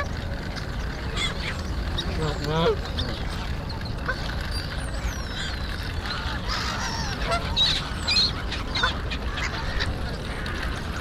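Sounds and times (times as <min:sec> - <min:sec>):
steady low rumble: 0:00.0 - 0:11.0
waterbirds calling: 0:00.0 - 0:11.0.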